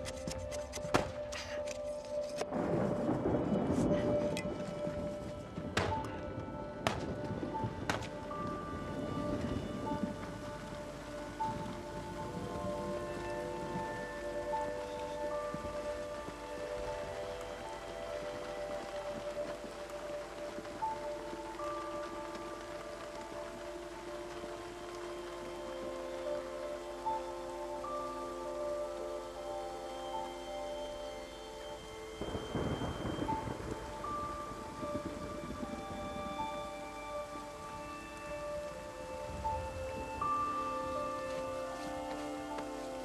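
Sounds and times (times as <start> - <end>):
soft film score held notes: 0.0 - 43.0
steady rain falling: 0.0 - 43.0.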